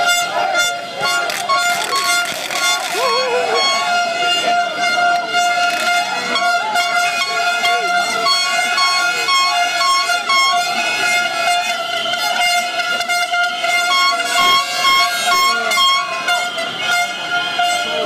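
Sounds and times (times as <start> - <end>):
horn long held note: 0.0 - 18.0
short repeated horn toots: 0.0 - 18.0.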